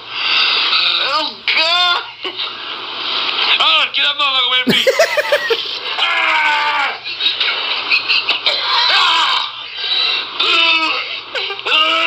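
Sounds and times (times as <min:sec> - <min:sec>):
harsh breathy noise: 0:00.0 - 0:01.0
man wailing: 0:04.7 - 0:06.8.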